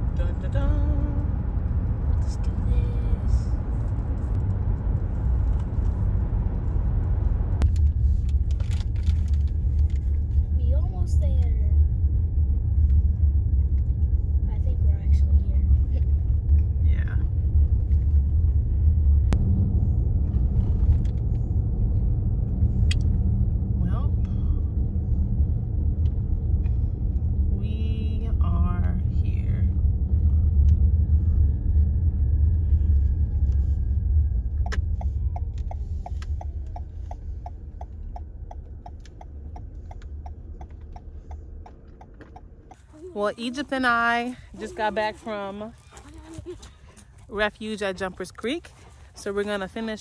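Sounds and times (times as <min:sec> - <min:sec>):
car driving heard from inside: 0:00.0 - 0:50.0.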